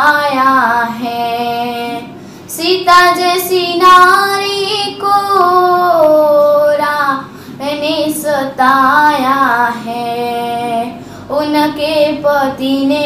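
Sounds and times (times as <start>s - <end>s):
girl singing devotional song: 0.0s - 13.0s
singer breathing: 2.1s - 2.5s, 7.2s - 7.6s, 11.0s - 11.3s.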